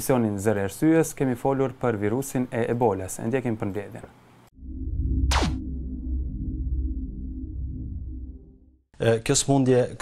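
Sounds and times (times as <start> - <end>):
low synth drone: 4.5 - 8.9
falling electronic swoosh: 4.6 - 8.8.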